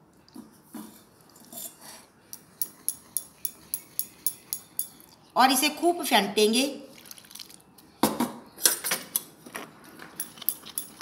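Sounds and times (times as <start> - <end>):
spoon clinking in glass bowl: 2.4 - 5.1.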